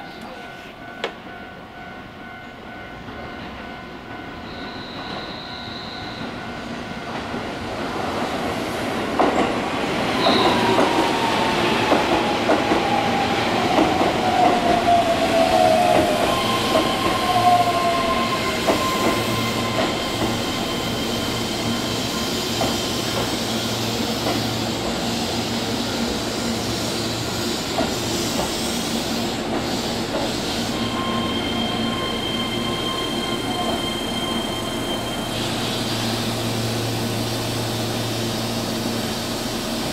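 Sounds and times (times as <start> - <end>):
falling whine of train: 0.0 - 39.9
train hum with held tones: 0.0 - 39.9
train wheels clicking over rail joints: 22.0 - 25.0, 27.5 - 30.8.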